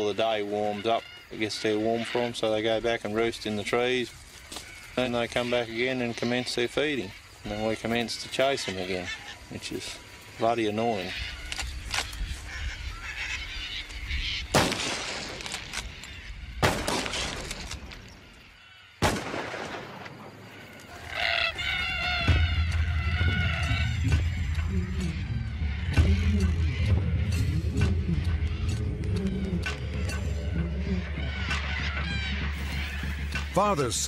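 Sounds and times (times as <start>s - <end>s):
flock of cockatoos calling: 0.0s - 19.0s, 20.4s - 27.6s, 28.2s - 34.0s
rifle shots with echo: 14.5s - 15.9s, 16.6s - 17.7s, 19.0s - 20.5s
background music: 21.2s - 34.0s.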